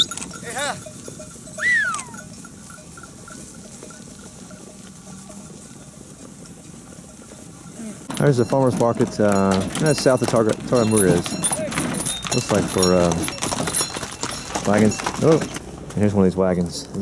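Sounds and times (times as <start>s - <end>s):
sheep bells clinking: 0.0s - 15.7s.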